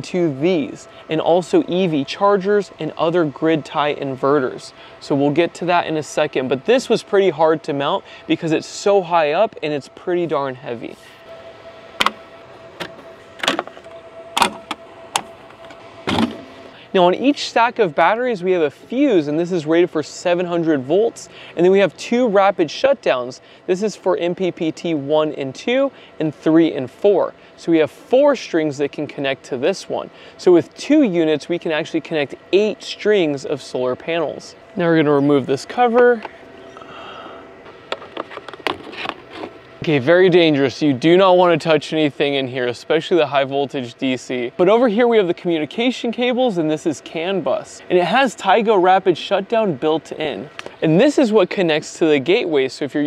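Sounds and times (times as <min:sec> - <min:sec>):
faint high hum: 0:00.0 - 0:53.0
cover clicking and scraping: 0:12.0 - 0:12.2, 0:12.8 - 0:16.5, 0:37.7 - 0:39.7.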